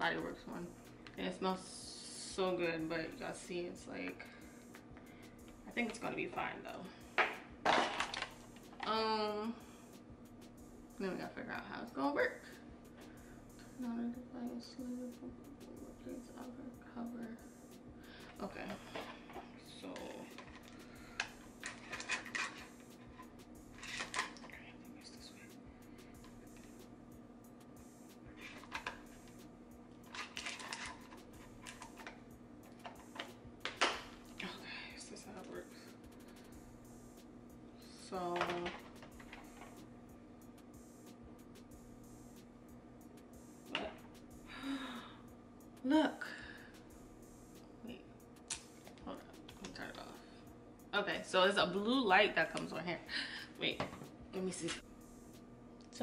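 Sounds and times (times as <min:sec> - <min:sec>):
faint steady hum: 0:00.0 - 0:56.0
woman's voiced sound: 0:08.8 - 0:09.6, 0:18.4 - 0:19.0, 0:38.0 - 0:38.8, 0:45.8 - 0:46.4, 0:51.0 - 0:54.8
woman's breathy sigh: 0:44.5 - 0:45.2.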